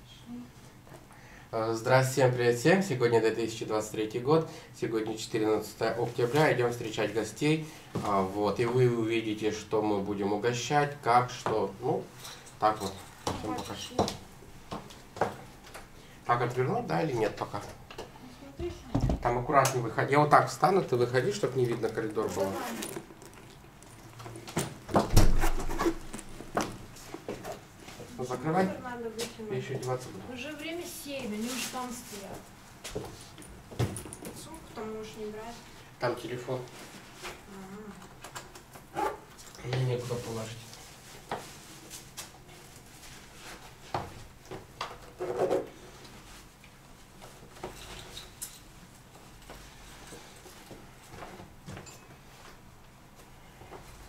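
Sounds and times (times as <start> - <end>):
rustling: 21.0 - 28.2, 31.2 - 32.4.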